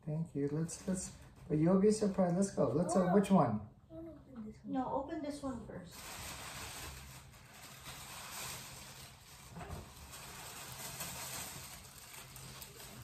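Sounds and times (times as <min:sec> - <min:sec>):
tissue paper rustling: 0:05.9 - 0:13.0.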